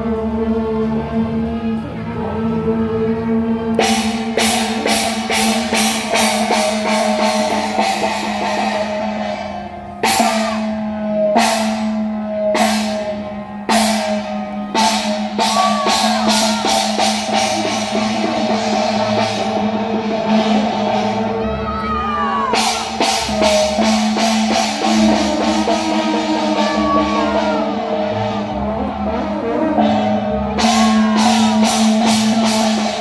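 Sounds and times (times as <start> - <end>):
cymbal and drum strokes: 3.7 - 21.7, 22.5 - 33.0.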